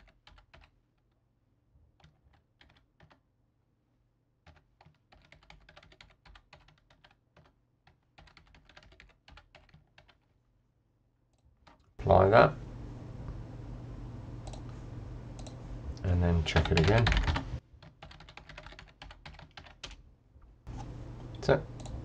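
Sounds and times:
typing on computer keyboard: 0.0s - 0.8s, 2.0s - 3.2s, 4.4s - 10.3s, 16.6s - 20.0s.

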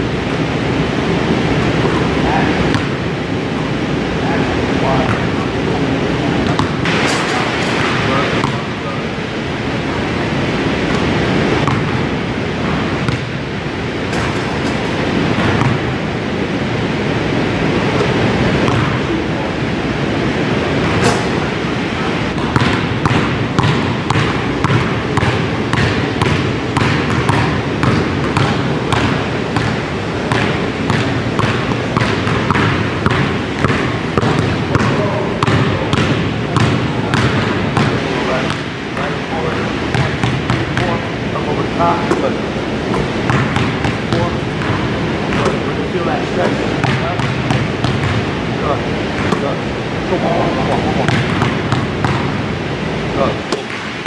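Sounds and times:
basketball bouncing on wooden floor: 6.4s - 6.9s, 7.8s - 8.6s, 11.6s - 12.0s, 12.6s - 13.4s, 15.4s - 15.9s, 18.0s - 19.0s, 22.3s - 39.1s, 39.9s - 41.0s, 42.9s - 45.6s, 46.8s - 48.3s, 51.0s - 52.4s.

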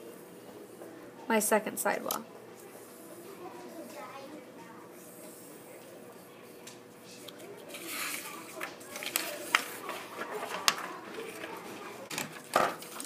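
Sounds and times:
paper rustling: 7.2s - 13.0s.

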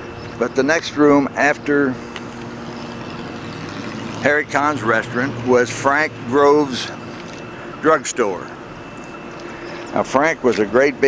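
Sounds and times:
faint low drone: 0.0s - 11.0s
road traffic hum: 0.0s - 11.0s.

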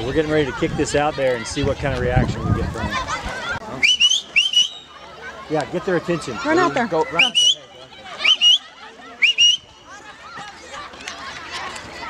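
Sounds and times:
person whistling loudly: 3.8s - 4.9s, 7.2s - 7.6s, 9.2s - 9.6s.

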